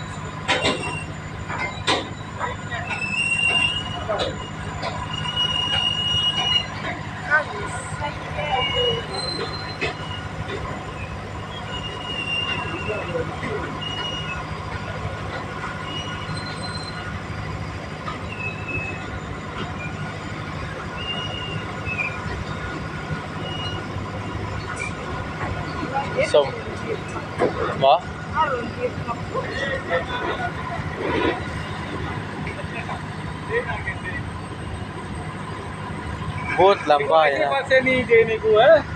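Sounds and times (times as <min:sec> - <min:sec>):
high-pitched wheel squeals: 0:00.0 - 0:38.4
freight train rumbling past: 0:00.0 - 0:38.9.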